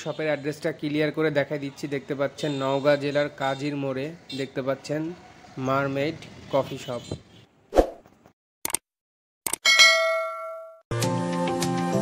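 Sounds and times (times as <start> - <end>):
quick clicks: 8.6 - 8.8
bright bell-like ding: 9.7 - 10.8
music: 10.9 - 12.0.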